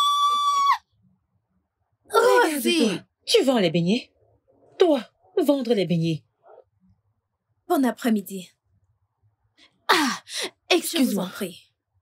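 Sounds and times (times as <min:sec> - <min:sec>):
woman's high-pitched shriek: 0:00.0 - 0:00.9.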